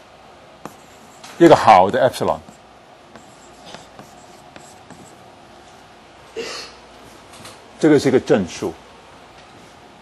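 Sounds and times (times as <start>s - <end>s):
chalk tapping and scraping on blackboard: 0.6s - 5.2s.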